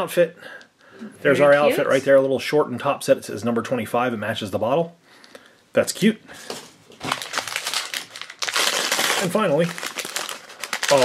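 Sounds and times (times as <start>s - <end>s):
tissue paper crinkling: 7.0s - 11.0s.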